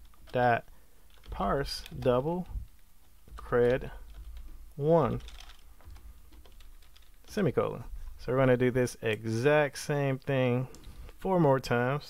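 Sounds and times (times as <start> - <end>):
computer keyboard typing: 1.0 - 7.3.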